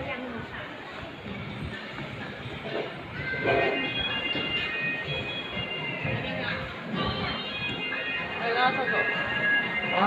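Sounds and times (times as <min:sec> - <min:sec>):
shopping mall hubbub: 0:00.0 - 0:10.0
background music: 0:02.7 - 0:10.0.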